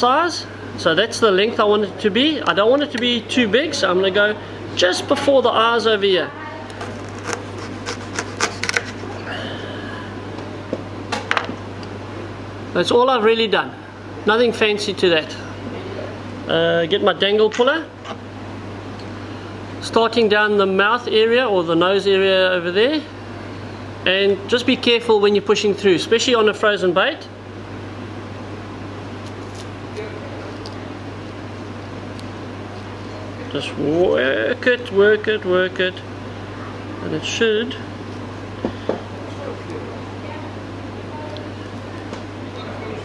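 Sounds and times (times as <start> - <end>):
steady low hum: 0.0 - 43.0.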